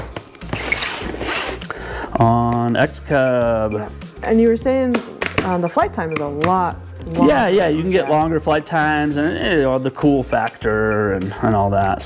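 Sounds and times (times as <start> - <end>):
packing tape tearing off box: 0.0 - 1.8.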